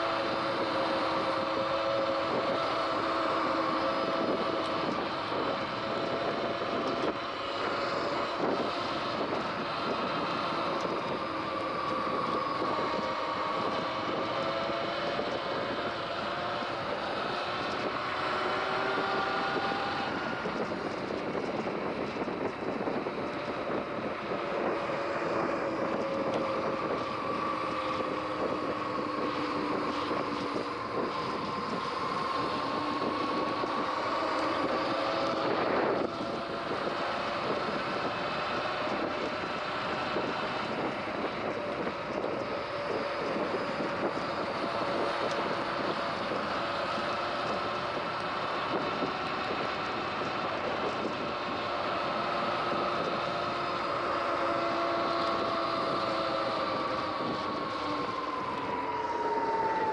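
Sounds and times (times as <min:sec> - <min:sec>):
electric bike motor whining: 0:00.0 - 0:59.9
rushing wind: 0:00.0 - 0:59.9.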